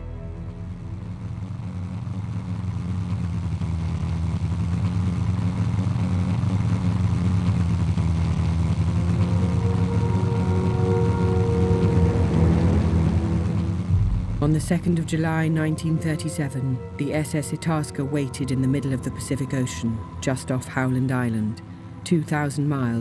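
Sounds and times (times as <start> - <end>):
music with sustained notes: 0.0 - 2.5, 8.7 - 23.0
propeller aircraft engine drone: 0.0 - 22.4.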